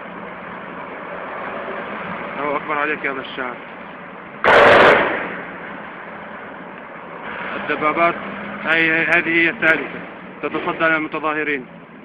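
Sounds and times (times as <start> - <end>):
steady background noise: 0.0 - 12.0
echoing tank blast: 4.4 - 5.5.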